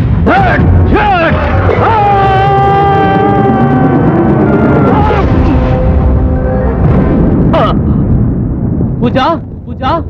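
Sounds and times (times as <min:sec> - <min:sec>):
low soundtrack rumble: 0:00.0 - 0:10.0
high wailing tone: 0:01.6 - 0:07.3.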